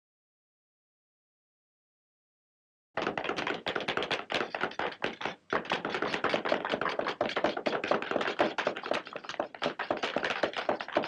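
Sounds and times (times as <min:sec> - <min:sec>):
hammers tapping on shoes: 0:03.0 - 0:11.0.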